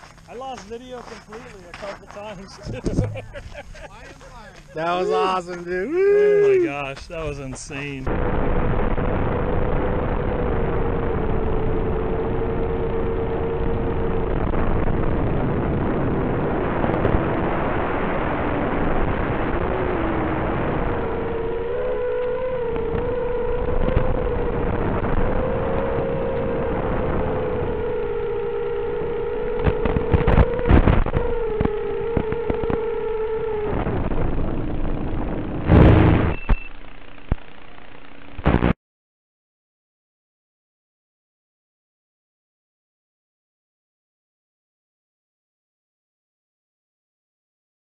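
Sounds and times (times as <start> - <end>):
quadcopter motors whining: 2.7 - 8.0, 9.9 - 14.4, 19.6 - 37.4
rushing wind noise: 7.1 - 36.4.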